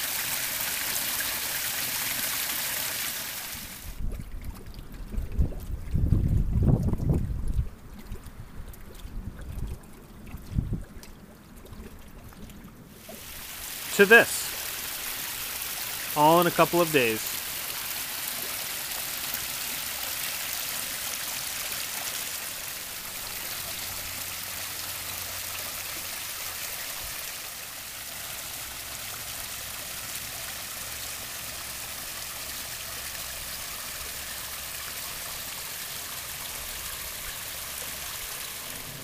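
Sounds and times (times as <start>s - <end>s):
water trickling over stones: 0.0s - 39.0s.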